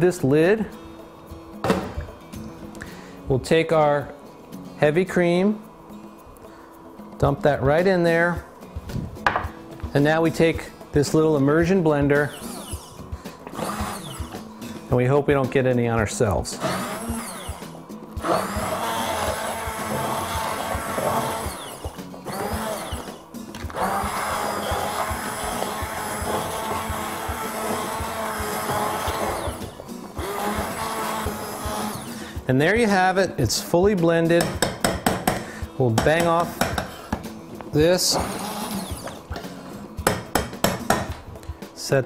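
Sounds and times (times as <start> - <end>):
immersion blender running: 13.5 - 14.5, 16.6 - 32.4, 38.1 - 39.2.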